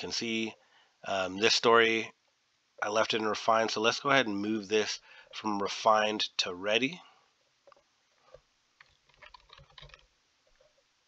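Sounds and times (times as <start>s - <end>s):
faint keyboard typing: 7.6s - 10.8s.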